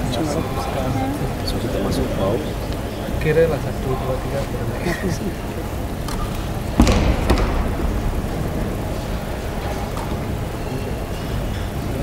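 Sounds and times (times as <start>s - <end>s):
arena ambience rumble: 0.0s - 12.0s.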